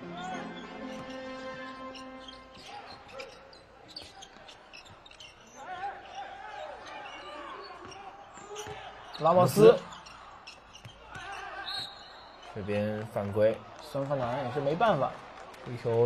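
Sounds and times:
shoe squeaks: 0.1s - 12.9s.

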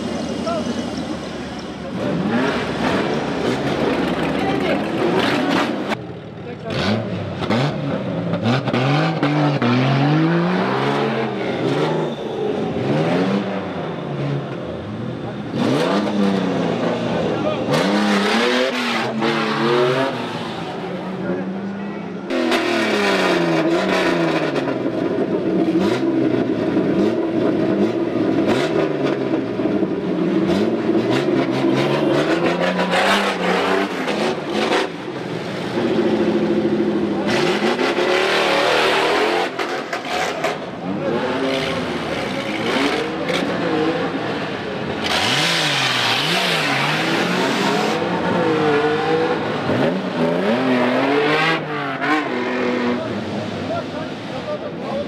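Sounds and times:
off-road vehicle engines revving: 0.0s - 55.0s.

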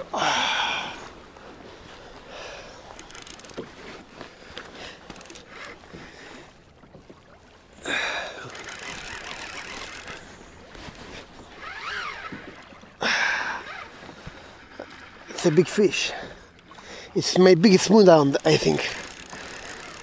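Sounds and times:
water slapping a hull: 0.0s - 20.0s
fishing reel winding: 2.9s - 3.7s, 5.1s - 5.8s, 8.3s - 10.3s, 18.2s - 20.0s.

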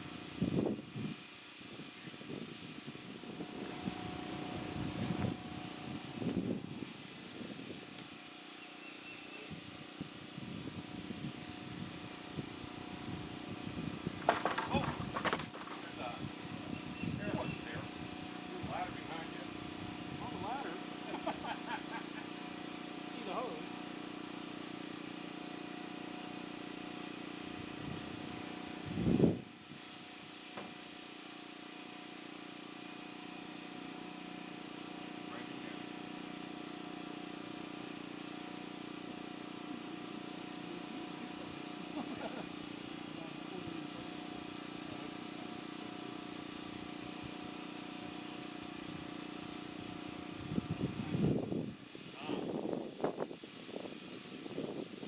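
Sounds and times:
steady mechanical hum: 0.0s - 55.0s.

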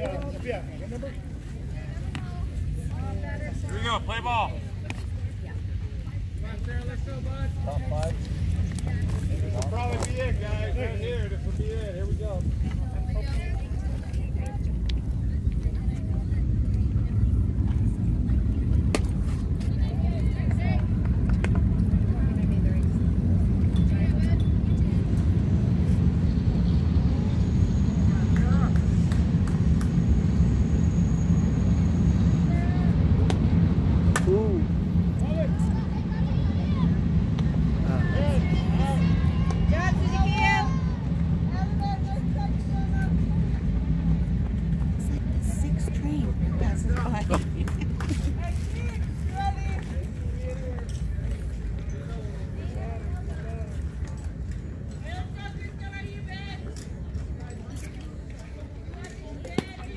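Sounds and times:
low rumble: 0.0s - 54.9s.

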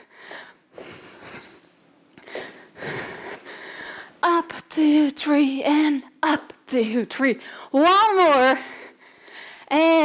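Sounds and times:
woman breathing hard: 0.0s - 4.2s, 8.6s - 9.7s.

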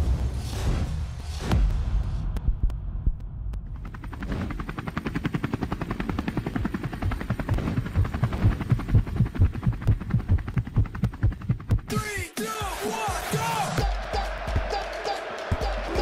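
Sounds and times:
helicopter rotor beating: 3.6s - 12.3s.

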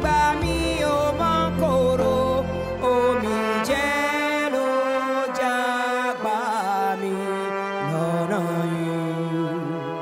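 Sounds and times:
bowed violins: 0.0s - 10.0s
trumpet: 0.0s - 10.0s.

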